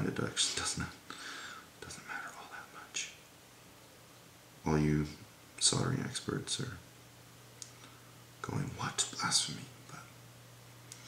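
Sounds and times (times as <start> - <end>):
man whispering: 0.0 - 1.1, 1.8 - 3.2, 4.7 - 6.8, 8.4 - 10.2.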